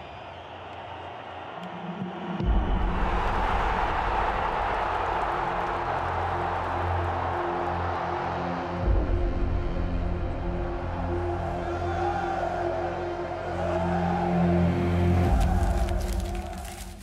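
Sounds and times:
stadium crowd cheering: 0:00.0 - 0:09.2, 0:10.9 - 0:17.0
music with deep bass: 0:02.4 - 0:16.8.

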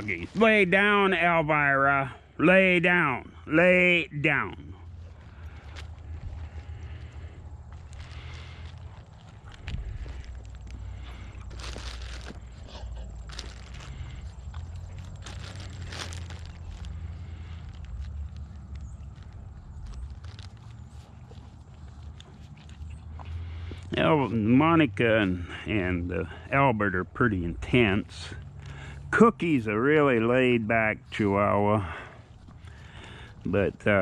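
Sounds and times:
wrappers rustling and crinkling: 0:00.0 - 0:00.8, 0:04.8 - 0:24.5, 0:31.2 - 0:34.0
steady low rumble: 0:03.1 - 0:24.5.

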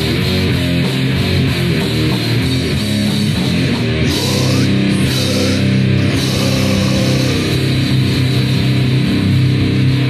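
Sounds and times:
distorted punk guitars and bass: 0:00.0 - 0:10.0.

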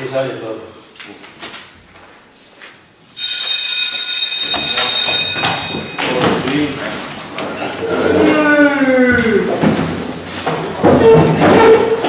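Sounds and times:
electric bell ringing: 0:03.2 - 0:06.4.

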